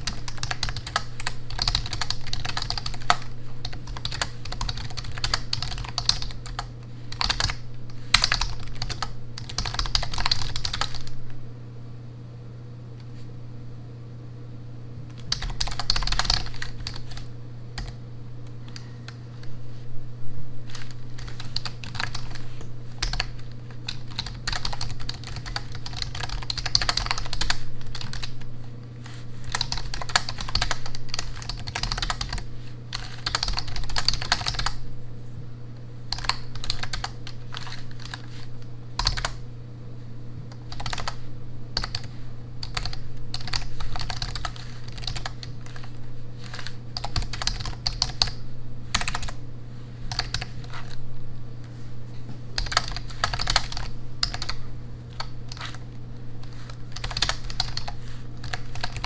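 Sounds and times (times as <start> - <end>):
keyboard typing clicks: 0.0 - 11.2, 15.1 - 19.2, 20.7 - 28.5, 29.5 - 34.8, 36.1 - 38.4, 39.0 - 39.4, 40.5 - 41.2, 41.8 - 49.4, 50.1 - 51.0, 52.6 - 59.0.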